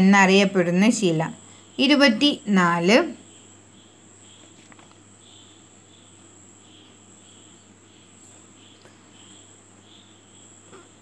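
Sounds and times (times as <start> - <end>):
high-pitched insect trill: 0.0 - 11.0
insect chirping: 0.0 - 11.0
low steady hum: 0.0 - 11.0.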